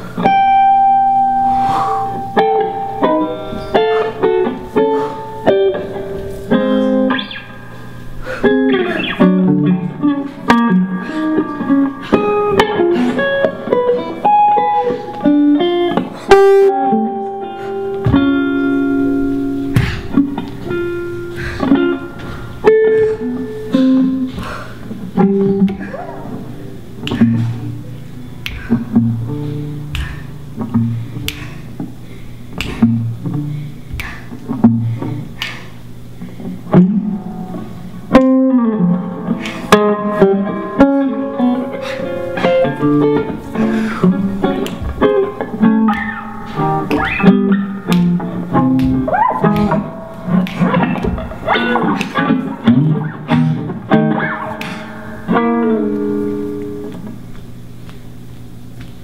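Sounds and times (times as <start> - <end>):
plucked guitar melody: 0.0 - 32.0, 32.6 - 35.4, 36.0 - 57.9
sharp taps on guitar: 44.0 - 58.0.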